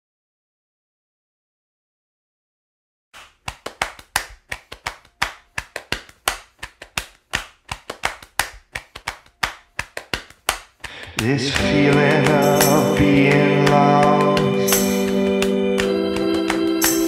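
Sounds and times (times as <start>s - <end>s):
hand claps and taps: 3.2s - 17.0s
ringing percussion stroke: 11.6s - 17.0s.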